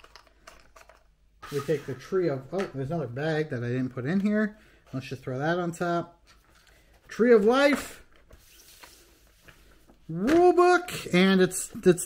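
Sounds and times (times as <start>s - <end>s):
cardboard rustling: 6.3s - 10.8s.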